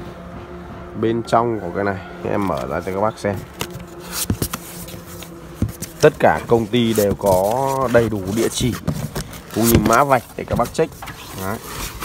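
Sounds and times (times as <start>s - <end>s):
faint steady hum: 0.0s - 12.0s
cardboard taps and scrapes: 2.4s - 12.0s.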